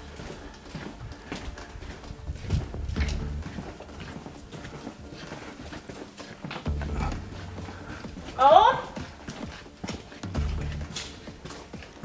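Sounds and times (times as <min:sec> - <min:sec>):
footsteps on gritty concrete: 0:00.0 - 0:12.0.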